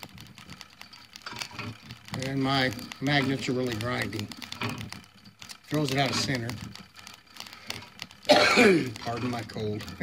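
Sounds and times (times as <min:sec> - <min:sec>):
sparking wire ends: 0:00.0 - 0:10.0.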